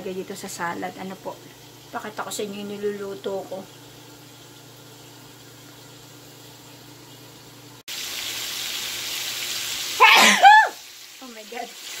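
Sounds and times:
steaks sizzling in a frying pan: 0:00.0 - 0:12.0
woman sneezing: 0:10.0 - 0:10.8.

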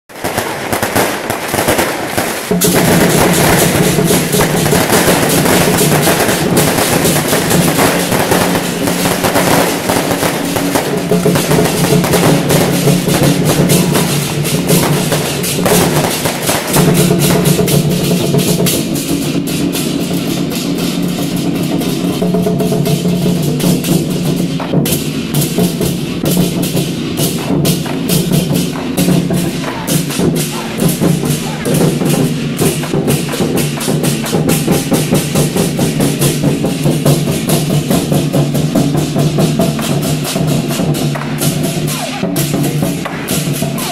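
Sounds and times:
barrel drums rolling rhythm: 0:00.1 - 0:43.9
firecrackers cracking: 0:00.1 - 0:43.9
sharp crashing strikes: 0:00.2 - 0:43.9.

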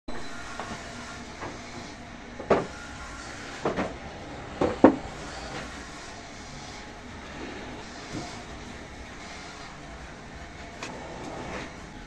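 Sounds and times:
steady background noise: 0:00.1 - 0:12.0
wooden knocks and clunks: 0:02.4 - 0:02.8, 0:03.5 - 0:04.0, 0:04.6 - 0:05.7.

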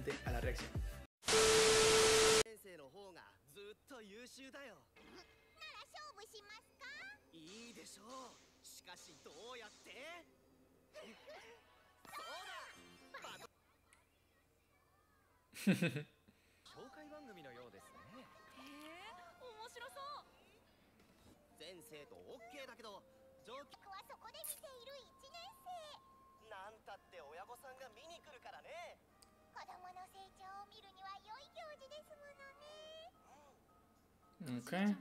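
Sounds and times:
loud static hiss: 0:01.2 - 0:02.4.

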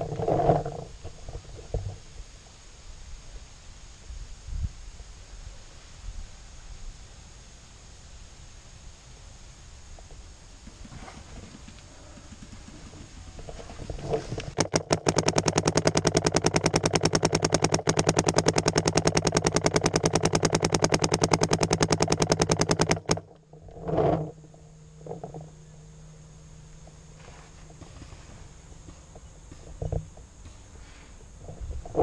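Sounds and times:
paintball marker rapid firing: 0:10.6 - 0:13.5, 0:14.5 - 0:23.3.

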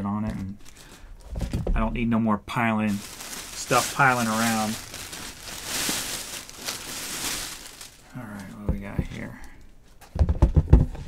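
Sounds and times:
plastic bag crinkling and rustling: 0:00.4 - 0:01.6, 0:02.8 - 0:09.2.

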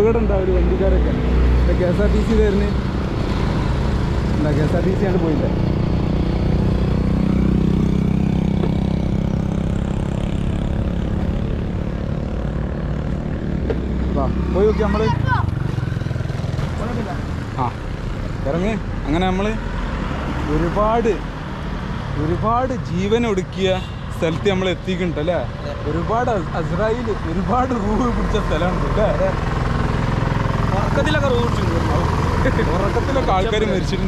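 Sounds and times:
passing traffic: 0:00.0 - 0:34.0
motor scooter engine: 0:02.0 - 0:18.6, 0:25.7 - 0:34.0.

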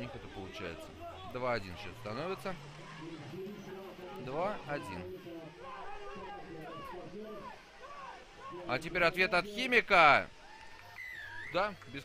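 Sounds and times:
voices shouting: 0:00.0 - 0:09.2.

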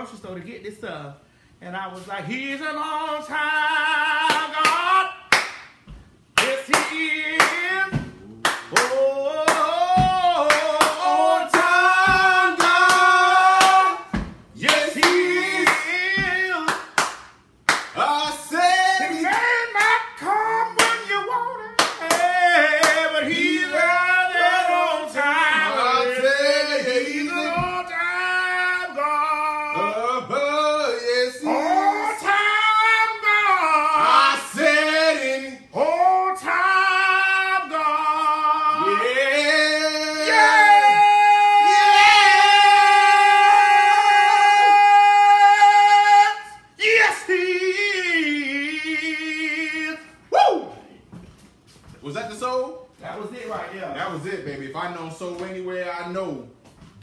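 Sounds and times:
hand claps: 0:04.3 - 0:18.0, 0:19.3 - 0:20.0, 0:20.8 - 0:21.1, 0:21.8 - 0:23.1
person singing slowly: 0:06.5 - 0:16.7, 0:18.1 - 0:50.6.

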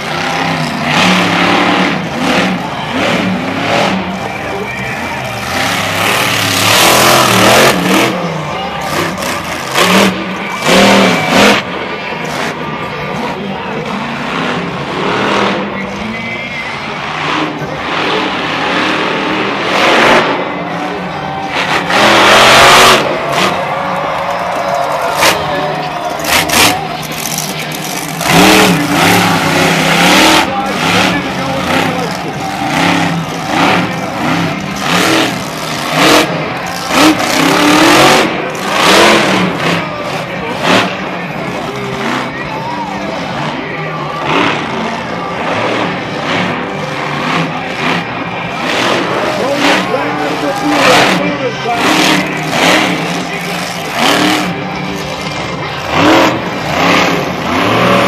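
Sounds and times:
crowd noise: 0:00.0 - 0:58.0
monster truck engine revving: 0:00.0 - 0:58.0.

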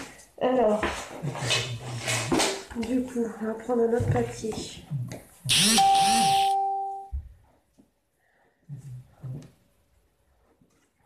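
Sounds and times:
steady held tone: 0:05.5 - 0:07.1
electronic chime: 0:05.6 - 0:07.1.

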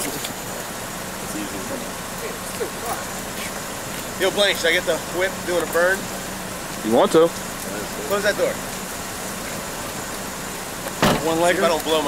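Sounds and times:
distant voices talking: 0:00.0 - 0:12.0.

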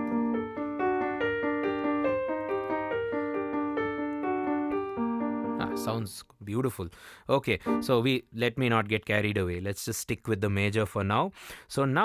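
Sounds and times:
digital piano arpeggios: 0:00.0 - 0:06.1, 0:07.7 - 0:08.0.

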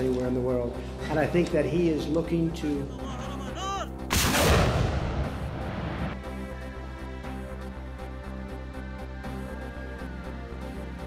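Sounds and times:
rocket launcher blast: 0:04.1 - 0:06.1.

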